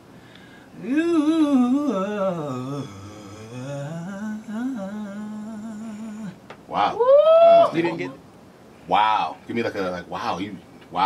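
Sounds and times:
man singing vocal run: 0.8s - 6.4s.

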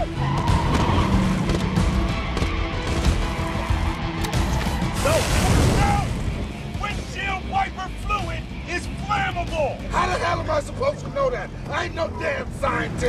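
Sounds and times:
tyres skidding: 0.0s - 7.5s
film music score: 0.0s - 13.0s.

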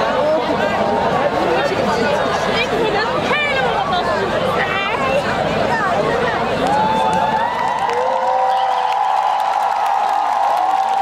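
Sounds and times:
crowd cheering and whooping: 6.6s - 11.0s.

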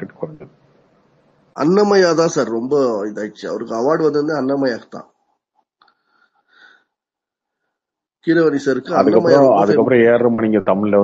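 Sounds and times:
man speaking: 1.6s - 5.2s, 8.2s - 11.0s.

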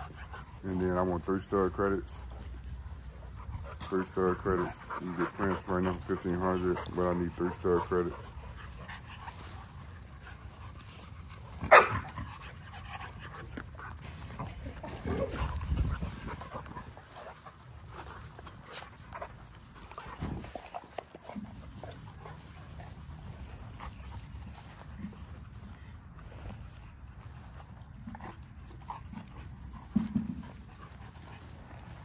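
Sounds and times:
dogs panting and scuffling: 0.0s - 32.0s
sharp dog cry: 11.6s - 12.2s.

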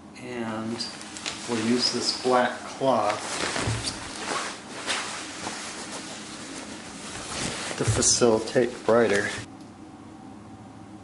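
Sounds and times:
cloth rustling: 0.7s - 9.5s.

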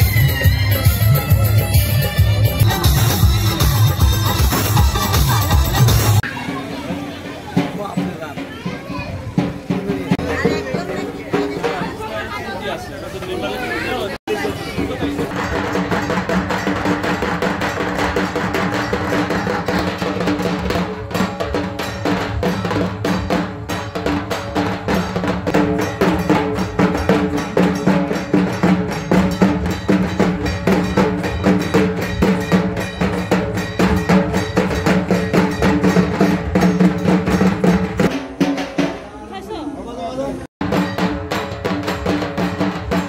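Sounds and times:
barrel drums fast beat: 0.0s - 12.3s, 14.3s - 39.2s, 40.6s - 43.0s.

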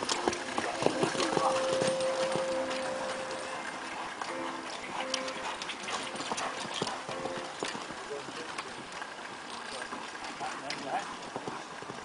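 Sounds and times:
hoofbeats on sand: 0.0s - 12.0s.

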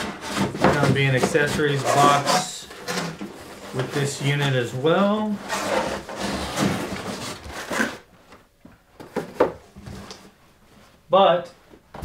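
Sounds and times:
cardboard box rustling and scraping: 0.0s - 8.1s.

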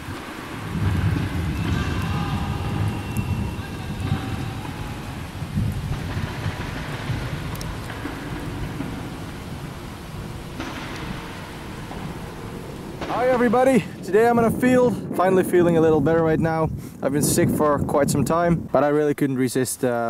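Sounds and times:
thunder rumbling: 0.0s - 19.0s
steady rain: 0.0s - 20.0s.

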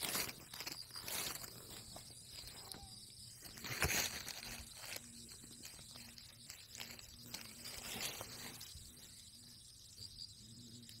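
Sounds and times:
insects hissing: 0.0s - 11.0s.

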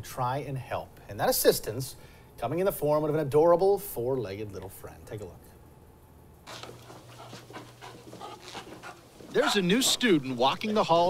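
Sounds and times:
puppy panting: 6.5s - 11.0s.

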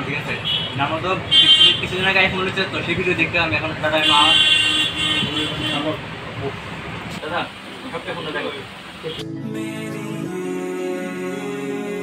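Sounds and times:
vehicle horn: 0.4s - 1.9s, 4.0s - 6.0s.

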